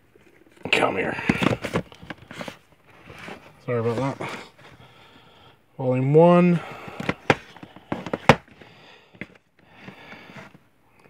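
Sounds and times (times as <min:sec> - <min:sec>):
plastic cases clacking: 0:00.7 - 0:04.4, 0:06.7 - 0:10.6.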